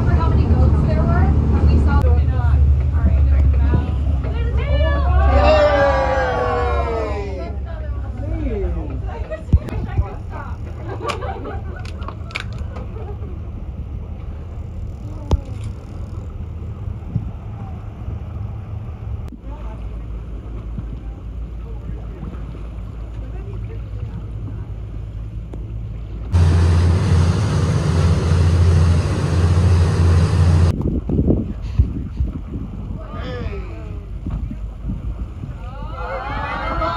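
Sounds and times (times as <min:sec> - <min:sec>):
boat engines droning: 0:00.0 - 0:30.8, 0:32.9 - 0:36.9
water noise: 0:00.0 - 0:36.9
wind noise: 0:26.4 - 0:36.9.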